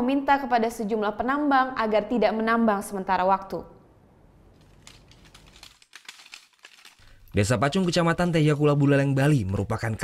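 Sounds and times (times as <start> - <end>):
slate pieces clinking underfoot: 4.6 - 7.2.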